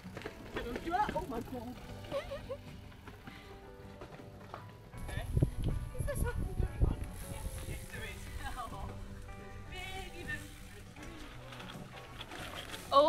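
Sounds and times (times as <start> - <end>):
background music with held notes: 0.0 - 13.0.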